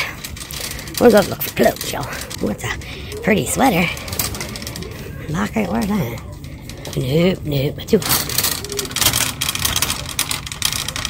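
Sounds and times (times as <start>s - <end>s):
shopping cart rattling: 0.0s - 11.0s.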